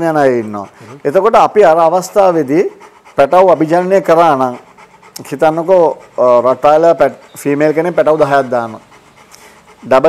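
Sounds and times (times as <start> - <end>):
man talking: 0.0 - 4.6, 5.2 - 8.8.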